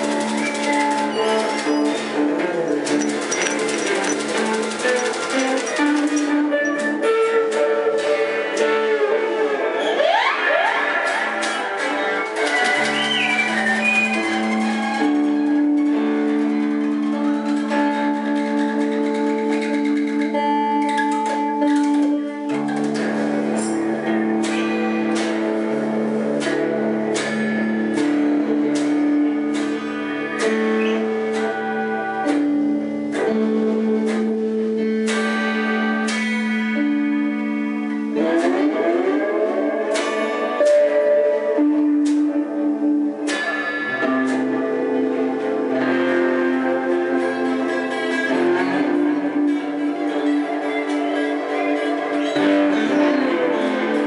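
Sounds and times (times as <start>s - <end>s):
electric guitar picked: 0.0s - 54.0s.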